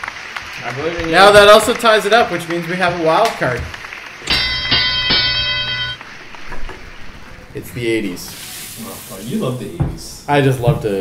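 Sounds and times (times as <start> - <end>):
bright bell-like chime: 4.3 - 6.0.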